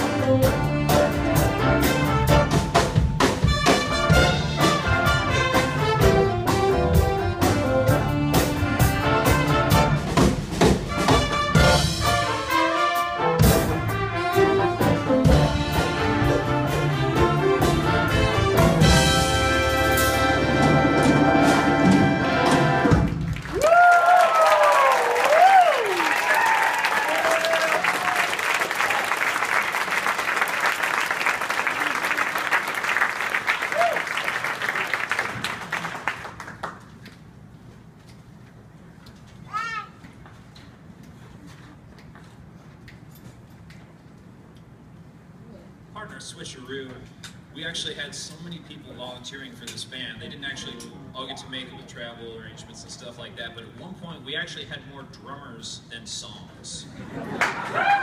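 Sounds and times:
jazz big band playing: 0:00.0 - 0:23.4
audience cheering: 0:23.0 - 0:36.2, 0:57.3 - 0:58.0
audience applauding: 0:23.0 - 0:37.0, 0:57.2 - 0:58.0.

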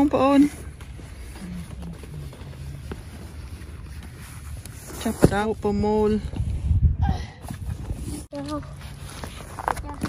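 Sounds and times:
wind buffeting microphone: 0:00.0 - 0:08.7.

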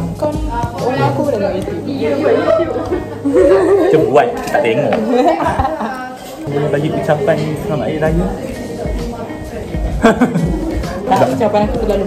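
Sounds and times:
two people chatting: 0:00.0 - 0:12.0.

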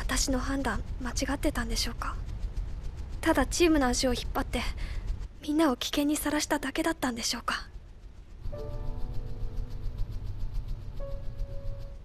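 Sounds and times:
ambient music drone: 0:07.6 - 0:12.0.

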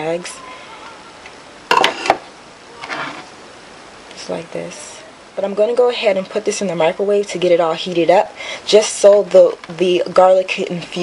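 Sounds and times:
soft scrape: 0:02.8 - 0:03.3.

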